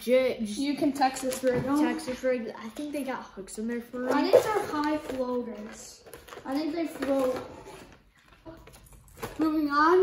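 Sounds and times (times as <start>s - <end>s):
boy talking: 0.0s - 7.8s, 8.4s - 10.0s.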